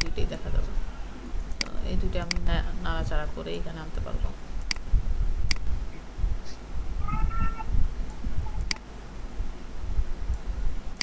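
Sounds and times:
high-pitched animal call: 7.0 - 7.7.

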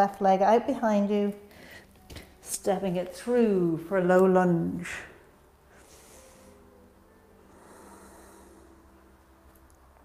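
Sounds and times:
low steady hum: 0.0 - 10.0
person breathing softly: 5.7 - 6.7, 7.4 - 9.0.

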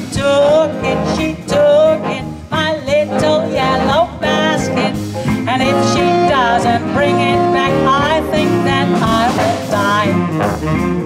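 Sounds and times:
woman singing: 0.0 - 10.3
big band playing swing: 0.0 - 11.0.

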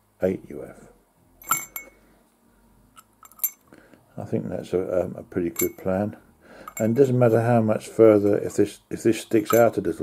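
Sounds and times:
light metallic clink: 1.4 - 2.0, 3.0 - 3.6, 5.5 - 5.9, 6.6 - 7.0, 9.4 - 9.8.

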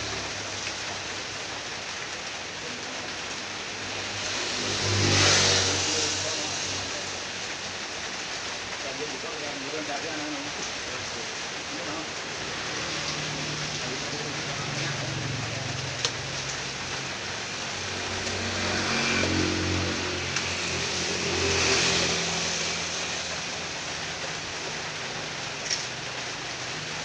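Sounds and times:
steady rain falling: 0.0 - 27.0
vehicle engine running low: 10.4 - 27.0.

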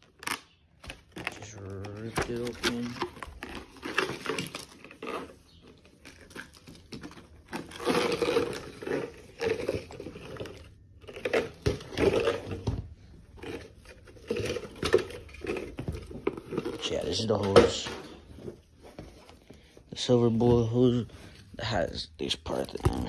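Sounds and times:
plastic packaging ripping and crinkling: 0.0 - 12.7, 13.3 - 17.6, 21.2 - 23.0.

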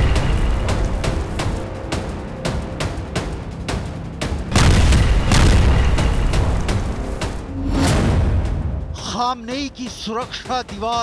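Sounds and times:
dramatic background music: 0.0 - 11.0
deep explosion boom rumbling: 4.5 - 8.6.

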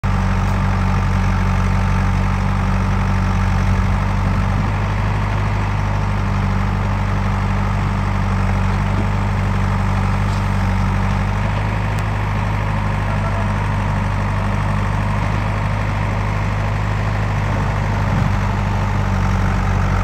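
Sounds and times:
diesel engines idling: 0.0 - 20.0.

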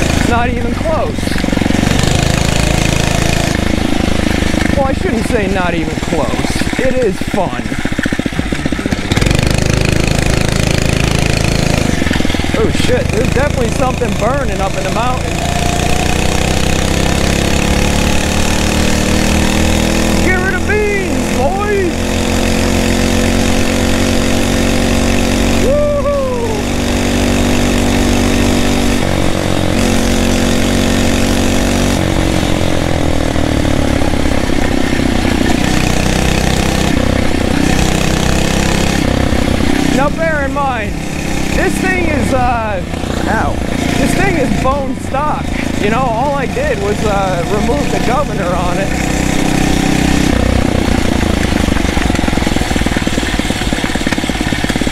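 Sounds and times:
small motorized bicycle engine: 0.0 - 40.6, 45.6 - 54.9.

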